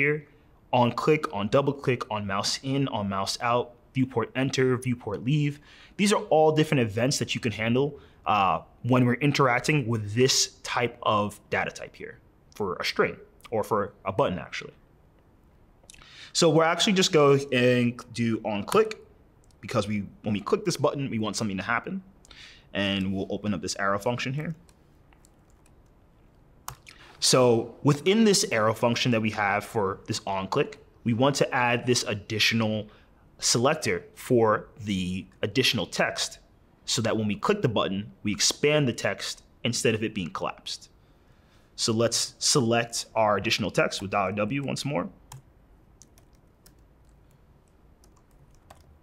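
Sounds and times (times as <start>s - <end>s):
keyboard typing clicks: 45.3s - 49.0s.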